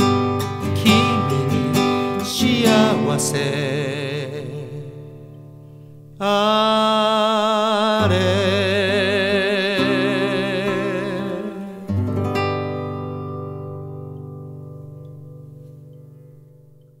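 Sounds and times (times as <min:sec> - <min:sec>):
person singing with vibrato: 0:00.0 - 0:05.3, 0:06.2 - 0:12.5
acoustic guitar: 0:00.0 - 0:17.0.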